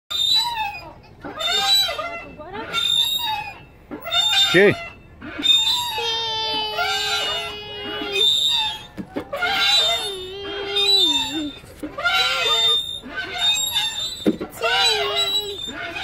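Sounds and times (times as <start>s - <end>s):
child making held vowel sounds: 6.0s - 8.3s, 10.0s - 11.6s.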